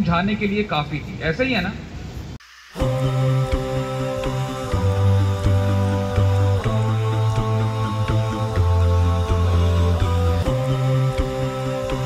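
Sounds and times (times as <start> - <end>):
voices humming sustained notes: 2.4 - 12.0.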